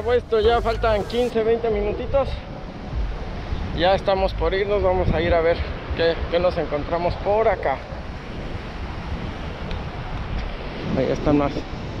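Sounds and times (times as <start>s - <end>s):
ocean surf breaking: 0.0s - 12.0s
wind buffeting microphone: 0.0s - 12.0s.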